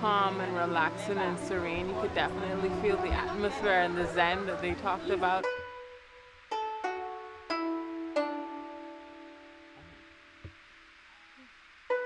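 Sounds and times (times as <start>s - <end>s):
faint tap: 9.8s - 10.6s.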